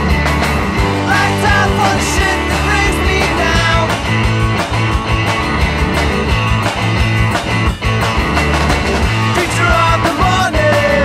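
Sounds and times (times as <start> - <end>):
rock song with guitar and drums: 0.0 - 11.0.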